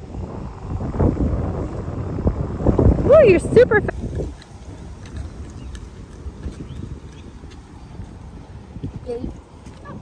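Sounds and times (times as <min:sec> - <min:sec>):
wind rumbling on microphone: 0:00.0 - 0:10.0
faint footsteps: 0:03.9 - 0:10.0.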